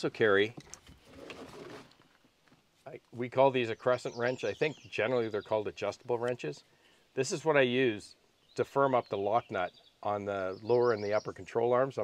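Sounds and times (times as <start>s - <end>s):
rustling and handling noise: 0.4s - 3.2s.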